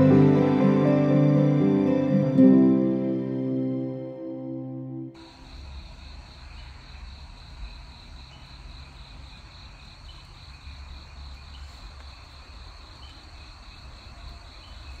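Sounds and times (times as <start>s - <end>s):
crickets trilling: 5.2s - 15.0s.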